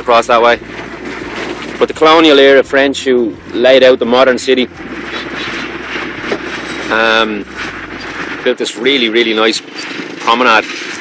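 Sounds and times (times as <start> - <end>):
motorbike and car traffic: 0.0 - 11.0.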